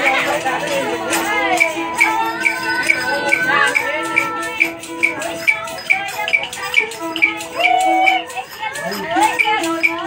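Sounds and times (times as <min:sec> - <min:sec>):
two-string fiddle long notes: 0:00.0 - 0:08.5
plucked lute and zither: 0:00.0 - 0:10.0.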